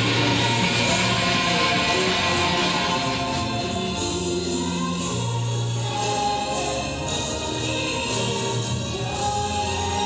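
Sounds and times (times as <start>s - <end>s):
choir singing gospel music: 0.0s - 9.1s.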